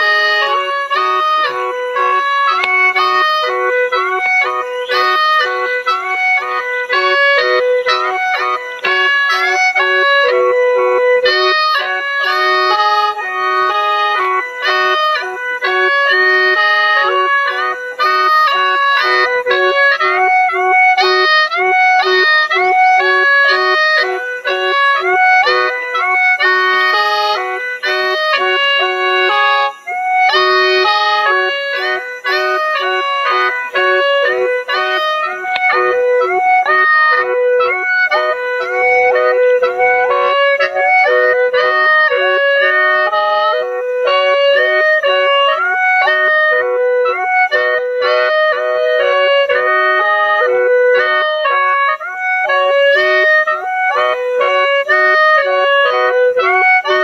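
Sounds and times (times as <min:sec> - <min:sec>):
gourd mouth organ melody: 0:00.0 - 0:57.0.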